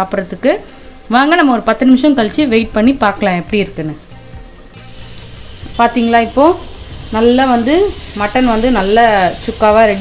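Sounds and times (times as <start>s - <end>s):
meat sizzling in a pan: 4.0s - 10.0s.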